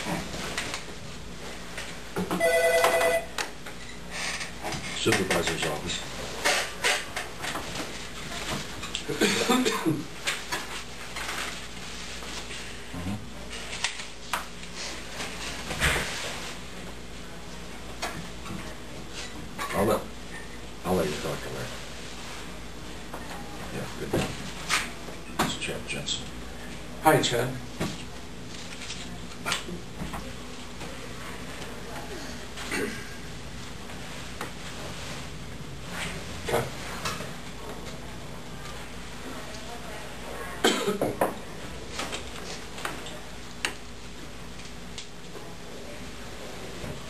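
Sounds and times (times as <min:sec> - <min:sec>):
low room noise: 0:00.0 - 0:47.0
man coughing: 0:09.1 - 0:10.1, 0:40.6 - 0:41.1.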